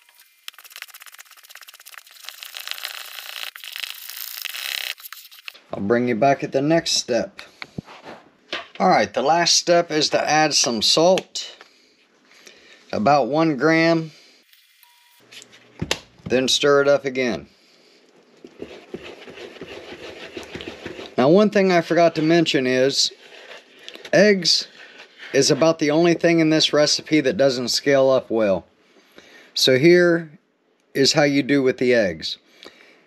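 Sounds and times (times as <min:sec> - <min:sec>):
spoon scraping batter in bowl: 0:18.4 - 0:21.4, 0:23.1 - 0:25.8.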